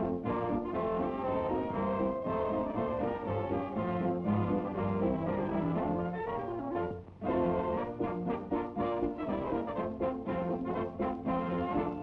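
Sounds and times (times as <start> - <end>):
brass-led orchestral cartoon music: 0.0 - 12.0.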